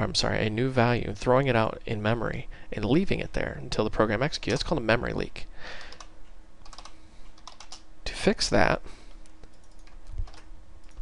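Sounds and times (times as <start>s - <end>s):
computer keyboard keystrokes: 5.8s - 7.8s, 9.2s - 11.0s.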